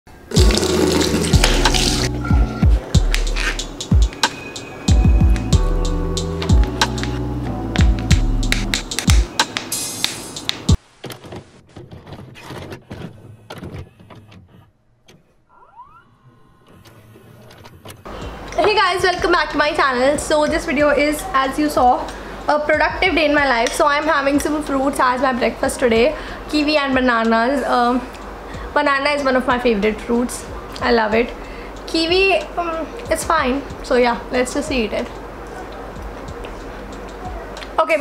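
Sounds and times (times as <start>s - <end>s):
tap water running into sink: 0.3s - 2.1s
background music with deep bass: 0.3s - 10.7s, 32.9s - 37.8s.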